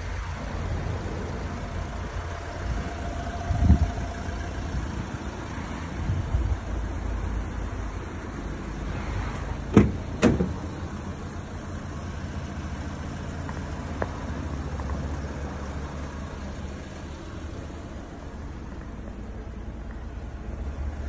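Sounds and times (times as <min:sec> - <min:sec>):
steady low rumble: 0:00.0 - 0:21.0
van door clunks: 0:09.6 - 0:10.9.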